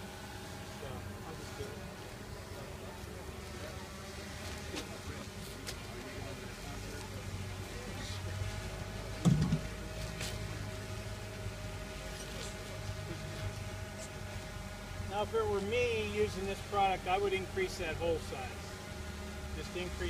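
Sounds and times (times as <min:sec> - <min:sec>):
low mechanical hum: 0:00.0 - 0:20.0.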